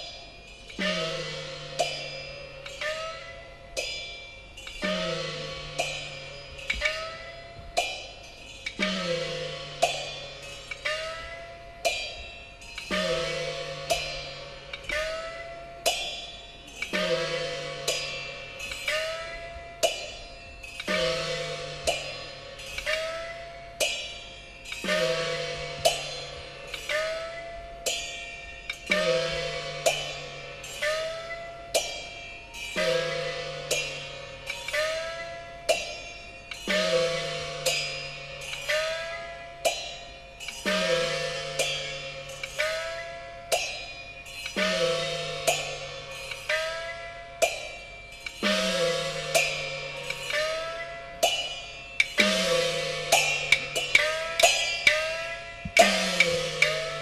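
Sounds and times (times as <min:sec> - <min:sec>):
cymbal crashes: 0:00.0 - 0:57.0
small gong strokes: 0:00.0 - 0:57.0
large gong with falling pitch: 0:04.8 - 0:07.9, 0:20.9 - 0:23.2, 0:52.2 - 0:57.0.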